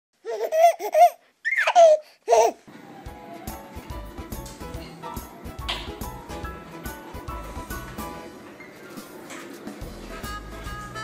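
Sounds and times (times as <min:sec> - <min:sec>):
baby laughing: 0:00.2 - 0:02.7.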